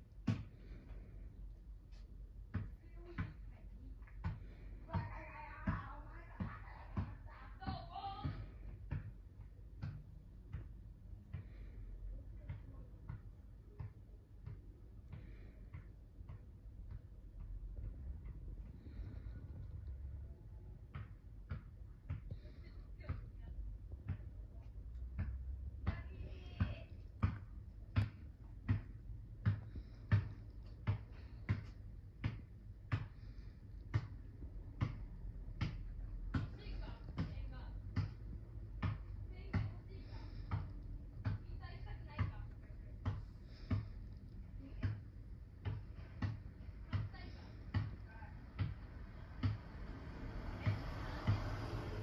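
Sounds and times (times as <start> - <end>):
basketball bouncing: 0.2 - 0.5, 25.2 - 33.1, 33.9 - 39.8, 45.6 - 49.6, 50.5 - 51.8
basketball bouncing on pavement: 0.2 - 0.7, 2.5 - 3.5, 4.2 - 11.6, 20.8 - 24.4, 25.0 - 52.0.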